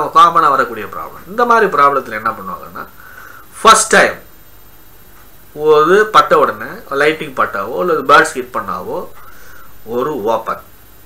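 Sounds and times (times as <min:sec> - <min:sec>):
man talking: 0:00.0 - 0:04.3, 0:05.5 - 0:09.2, 0:09.8 - 0:10.7.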